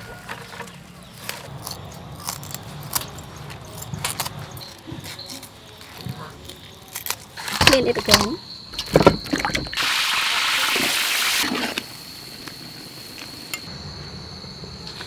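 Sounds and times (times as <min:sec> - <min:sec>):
woman's voice: 0:07.6 - 0:08.4.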